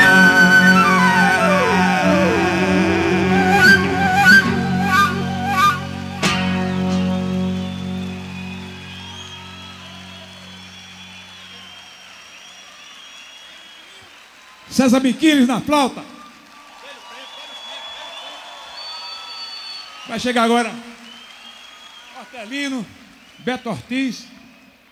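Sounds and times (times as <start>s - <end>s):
live band playing: 0.0s - 11.5s.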